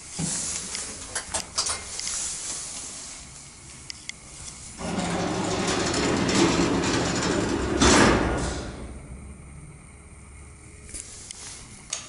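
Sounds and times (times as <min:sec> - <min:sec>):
lift doors banging shut: 0:04.8 - 0:09.1
lift door drive humming: 0:04.8 - 0:09.8.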